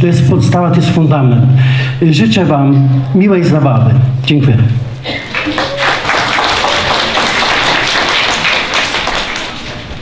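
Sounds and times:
audience applauding: 5.1 - 10.0.

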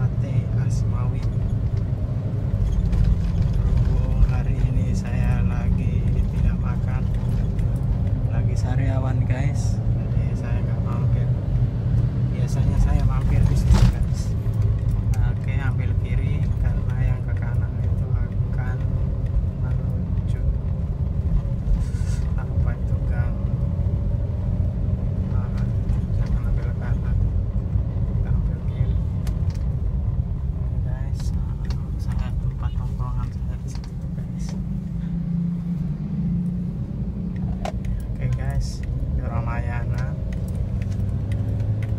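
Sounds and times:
car engine and tyres rumbling: 0.0 - 41.9.

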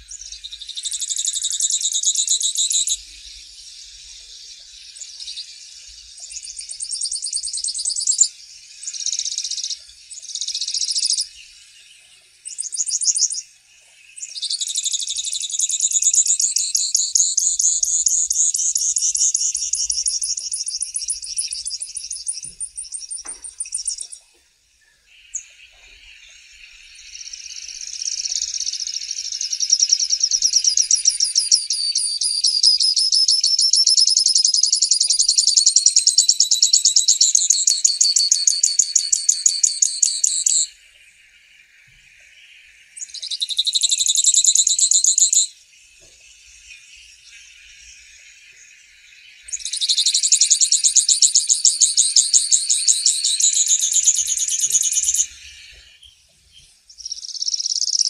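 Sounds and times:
finch trilling song: 0.0 - 58.0.

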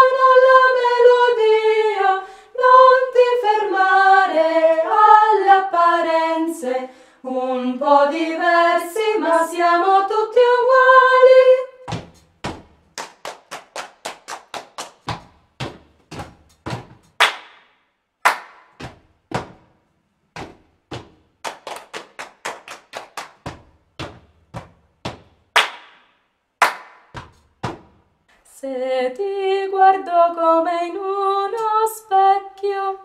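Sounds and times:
person singing: 0.0 - 11.8, 28.5 - 33.0
rhythmic hand clapping: 12.0 - 19.6, 20.4 - 28.0.

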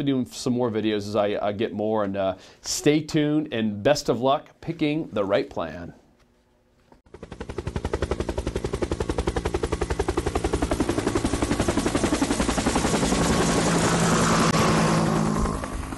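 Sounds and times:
rapid even pulsing: 7.1 - 15.9.

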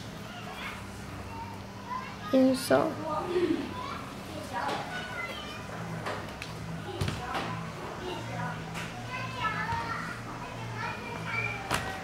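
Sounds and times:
children playing and chattering: 0.0 - 12.0.

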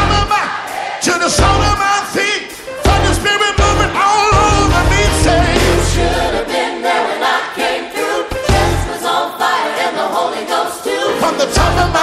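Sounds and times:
bass line: 0.0 - 0.3, 1.4 - 1.8, 2.8 - 6.5, 8.5 - 8.9
choir and congregation singing: 0.0 - 1.8, 2.7 - 12.0
beat: 2.8 - 6.6.

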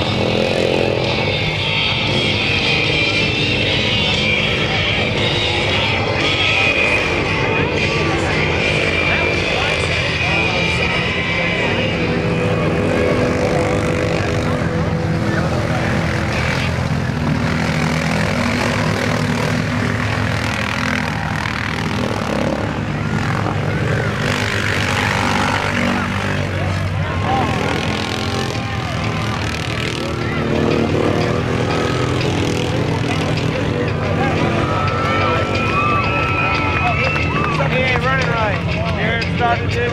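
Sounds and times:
atv engines revving: 0.0 - 39.9.

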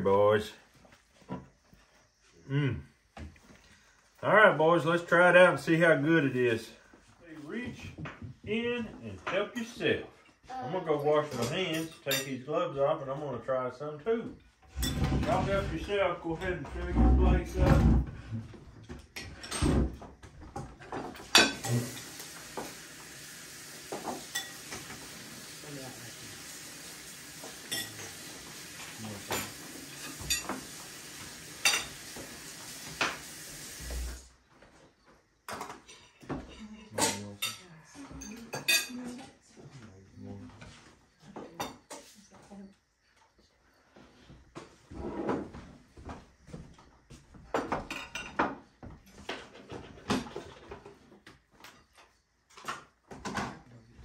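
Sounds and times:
cutlery and plates clinking on tray: 11.3 - 12.4, 14.7 - 15.5, 20.8 - 22.2, 24.0 - 25.0, 27.5 - 30.7, 35.5 - 39.1
steady hiss: 21.4 - 34.3.

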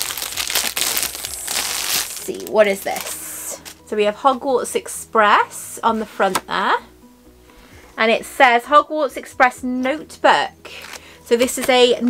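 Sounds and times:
plastic wrapping rustling: 0.0 - 3.8.

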